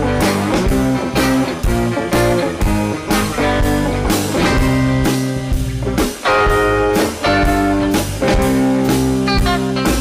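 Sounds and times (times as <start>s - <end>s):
drum kit beat: 0.0s - 10.0s
electric guitars and bass: 0.0s - 10.0s.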